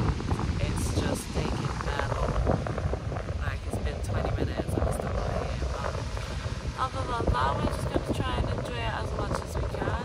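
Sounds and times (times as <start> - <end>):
wind buffeting microphone: 0.0 - 10.0
people talking: 0.4 - 2.4, 3.4 - 10.0.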